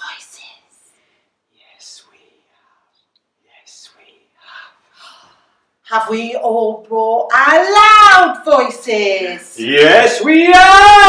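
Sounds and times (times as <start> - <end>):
person whispering: 0.0 - 0.9, 1.5 - 5.2
person speaking loudly: 9.6 - 11.0.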